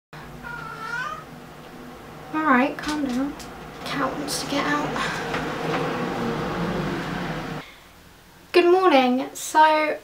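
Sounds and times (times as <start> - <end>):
cat meowing: 0.4 - 1.3.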